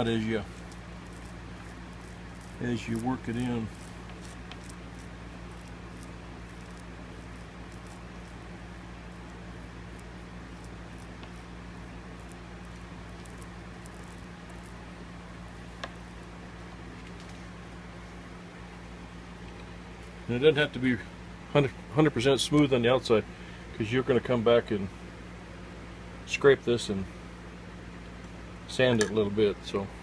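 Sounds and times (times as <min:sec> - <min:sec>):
sinew squishing under hand: 0:00.0 - 0:16.4
low electrical hum: 0:00.0 - 0:30.0.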